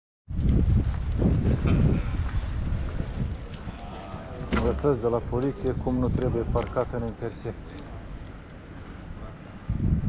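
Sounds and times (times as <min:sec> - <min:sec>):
wind on microphone: 0:00.3 - 0:06.9, 0:09.0 - 0:10.0
traffic rumble: 0:00.3 - 0:10.0
faint voices: 0:01.7 - 0:09.7.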